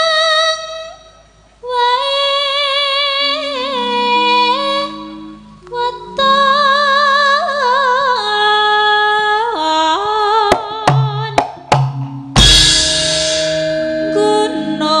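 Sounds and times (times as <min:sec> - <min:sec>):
woman singing with vibrato: 0:00.0 - 0:01.0, 0:01.6 - 0:11.6, 0:12.6 - 0:15.0
sharp drum strokes: 0:10.6 - 0:13.9
bass drum boom: 0:10.9 - 0:13.8
cymbal crash: 0:11.9 - 0:14.2.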